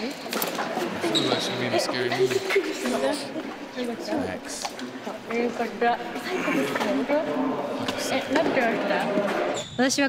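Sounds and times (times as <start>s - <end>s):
women speaking: 5.1s - 7.4s, 8.0s - 10.0s.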